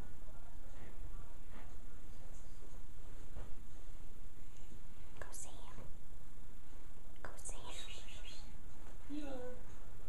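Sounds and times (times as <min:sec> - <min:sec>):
low background noise: 0:00.0 - 0:10.0
person whispering: 0:05.2 - 0:05.9, 0:07.2 - 0:08.5.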